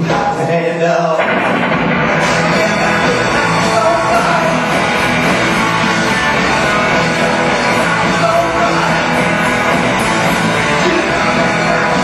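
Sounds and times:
live rock band: 0.0 - 12.0
electric guitar: 1.1 - 12.0.

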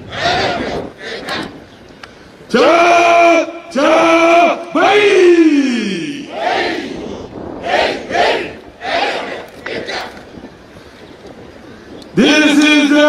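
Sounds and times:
group shouting a cheer: 2.6 - 7.0.

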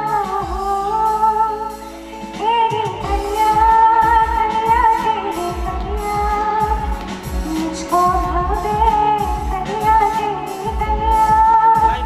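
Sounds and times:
keyboard and band accompaniment: 0.0 - 12.0
woman singing into microphone: 0.0 - 12.0.

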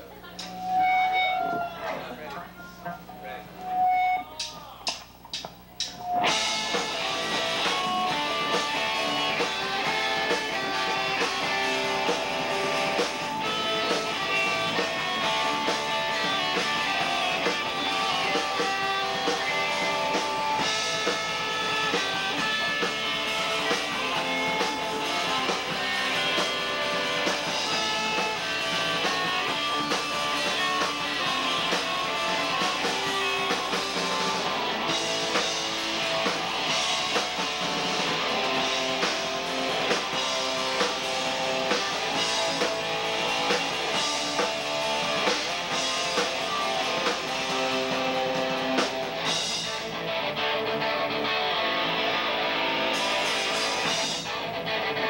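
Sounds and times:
rock band playing: 0.0 - 2.2, 2.8 - 55.0
stray guitar notes: 0.0 - 55.0.

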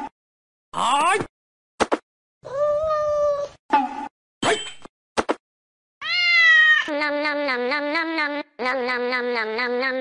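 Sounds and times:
cat meowing: 6.0 - 6.9.

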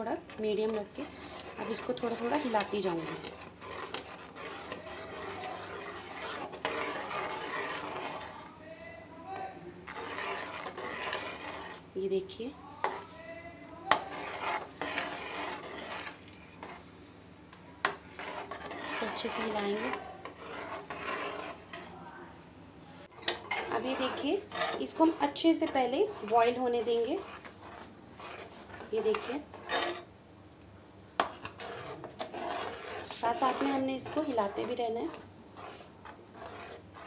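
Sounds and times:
ladle scraping metal pan: 0.0 - 8.6, 9.3 - 11.9, 12.7 - 16.9, 17.8 - 22.0, 23.1 - 30.1, 31.2 - 37.0.

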